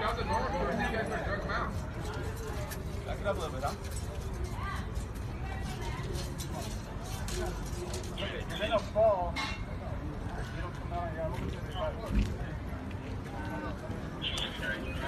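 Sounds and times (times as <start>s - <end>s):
people talking in background: 0.0s - 15.0s.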